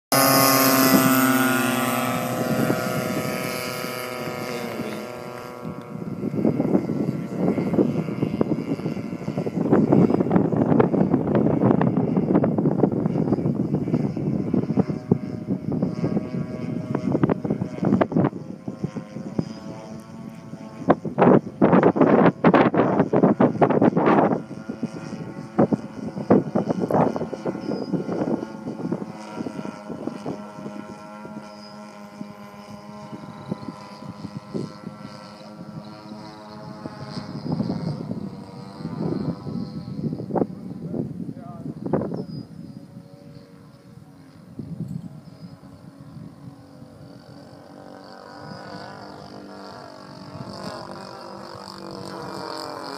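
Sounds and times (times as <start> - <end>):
model airplane engine drone: 0.1 - 52.9.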